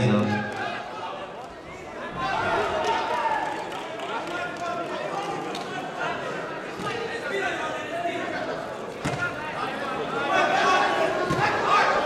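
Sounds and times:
people talking and calling out: 0.0 - 3.3.

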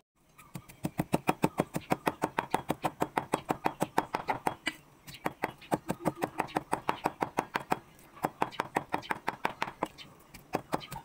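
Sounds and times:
cleaver chopping on wooden block: 0.5 - 11.0.

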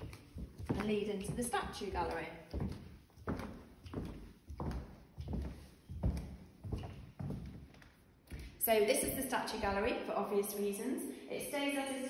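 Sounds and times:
footsteps on wooden floorboards: 0.0 - 9.8.

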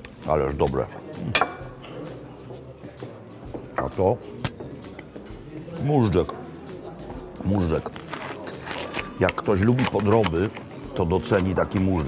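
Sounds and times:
restaurant dining room hum: 0.0 - 12.0
cutlery clinking on china plate: 0.7 - 2.1.

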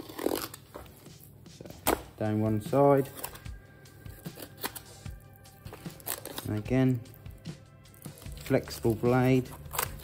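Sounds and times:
knife clicking and scratching on fish: 9.4 - 10.0.

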